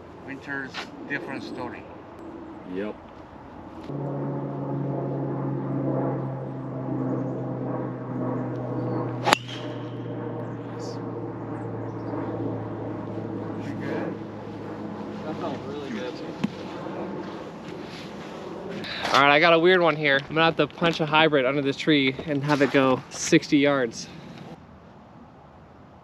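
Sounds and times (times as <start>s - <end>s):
steady low hum: 0.0s - 24.6s
golf club striking ball: 9.2s - 10.1s.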